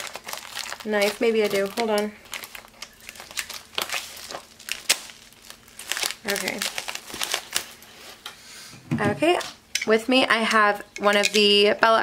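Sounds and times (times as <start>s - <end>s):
packaging crinkling and rustling: 0.0s - 8.2s.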